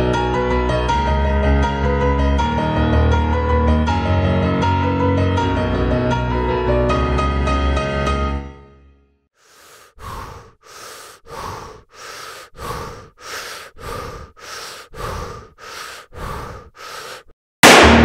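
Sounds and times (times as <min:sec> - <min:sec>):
person breathing hard: 0:09.4 - 0:17.4
loud ringing hit: 0:17.6 - 0:18.0.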